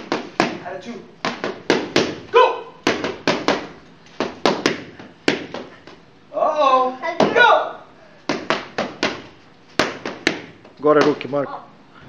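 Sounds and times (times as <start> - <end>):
boxing gloves hitting focus mitts: 0.0 - 6.0, 7.1 - 7.6, 8.2 - 11.4.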